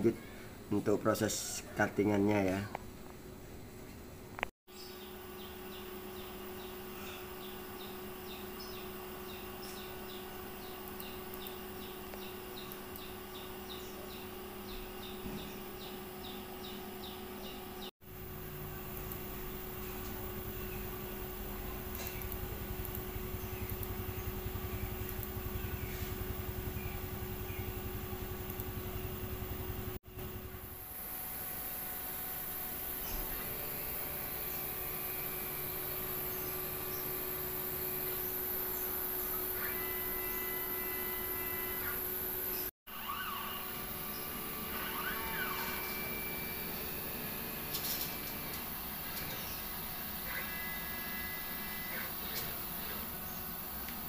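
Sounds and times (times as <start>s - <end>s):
cutting machine hum and hiss: 4.8s - 54.0s.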